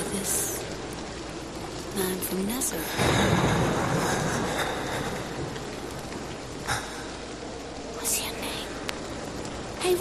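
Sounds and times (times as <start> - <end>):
steady hiss: 0.0 - 10.0
thunder-like rumbling burst: 2.9 - 6.7.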